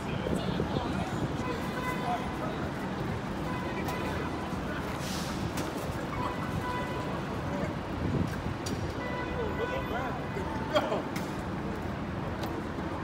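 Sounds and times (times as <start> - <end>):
passers-by talking: 0.0 - 13.0
traffic rumble: 0.0 - 13.0.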